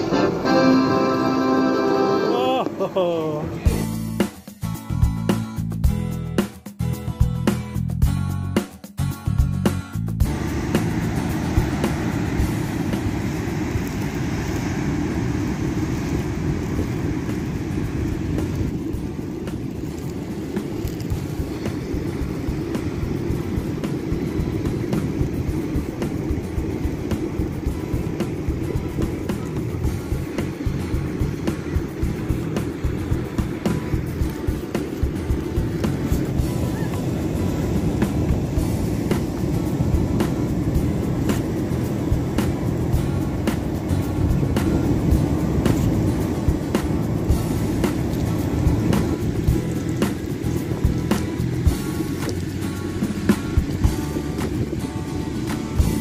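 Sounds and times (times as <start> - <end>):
waves breaking: 0.0 - 5.5, 8.6 - 56.0
wind buffeting microphone: 10.2 - 56.0.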